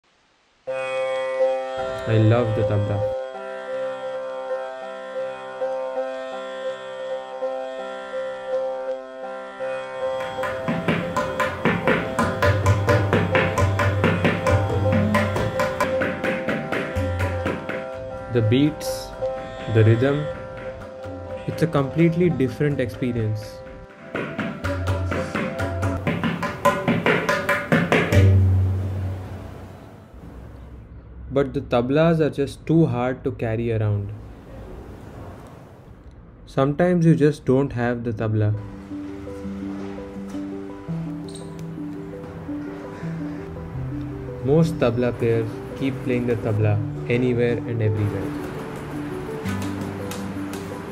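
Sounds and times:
tabla drums played by hand: 10.2 - 18.1, 19.4 - 21.7, 23.7 - 29.0.

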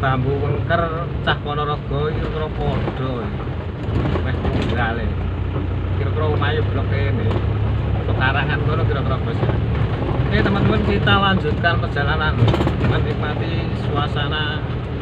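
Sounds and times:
car engine running: 0.0 - 15.0.

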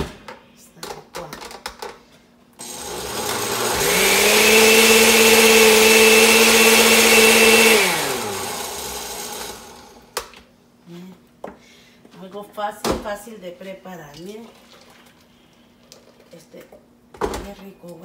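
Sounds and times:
blender motor whining: 2.6 - 10.1.

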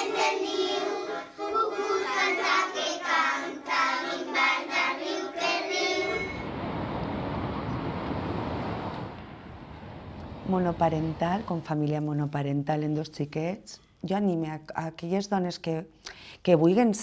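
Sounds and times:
children singing together: 0.0 - 6.4
street traffic noise: 6.0 - 11.7.

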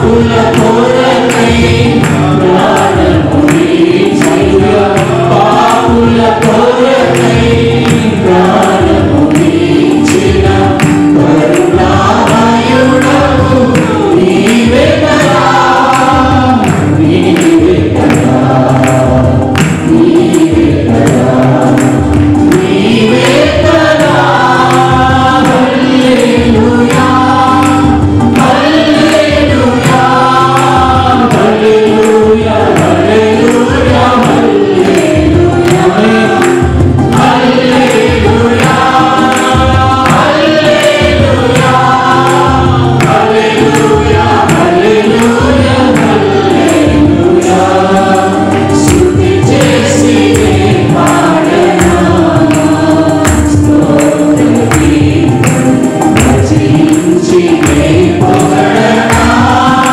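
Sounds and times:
choir singing through microphones: 0.0 - 59.9
music with a steady beat: 0.0 - 59.9.

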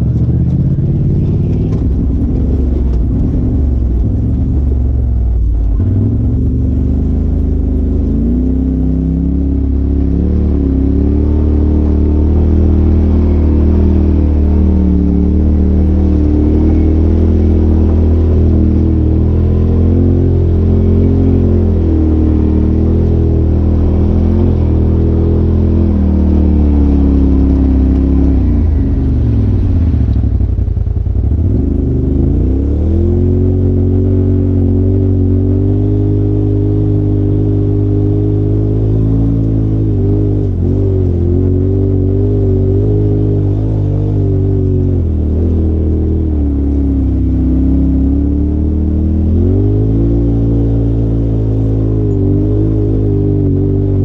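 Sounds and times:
off-road vehicle engine revving: 0.0 - 54.0.

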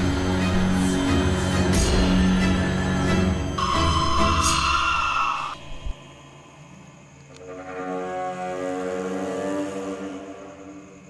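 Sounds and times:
jump-scare sting: 3.6 - 6.1.

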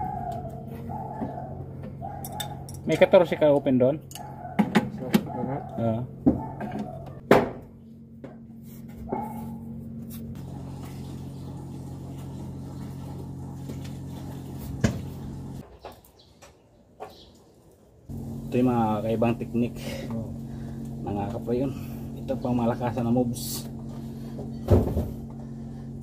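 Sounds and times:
low machine hum: 5.4 - 15.6, 18.1 - 26.0.

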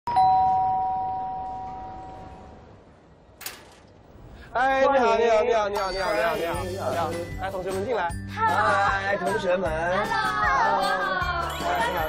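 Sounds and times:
two-tone doorbell chime: 0.1 - 2.2.

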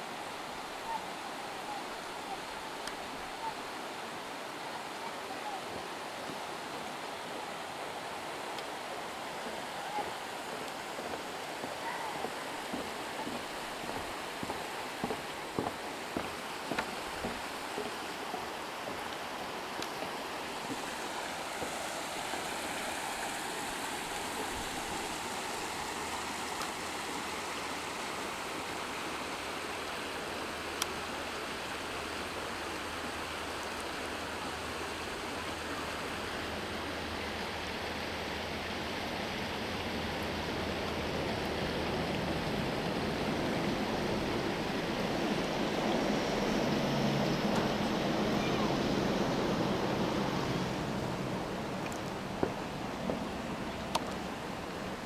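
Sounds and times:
river rushing over rocks: 0.0 - 55.0.

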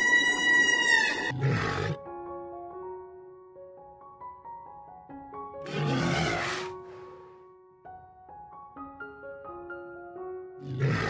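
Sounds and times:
whale call: 0.0 - 1.3
rough animal roar: 0.0 - 2.0, 5.6 - 6.8, 10.6 - 11.0
soft background music: 0.0 - 11.0.

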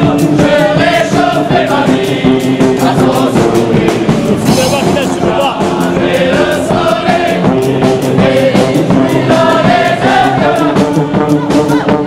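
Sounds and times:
brass band playing: 0.0 - 12.0
crowd singing along: 0.0 - 12.0.

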